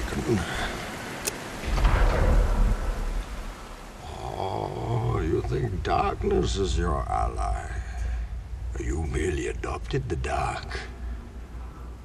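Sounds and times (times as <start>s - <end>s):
water pouring in a sewer tunnel: 0.0s - 12.0s
deep rumble: 1.6s - 12.0s.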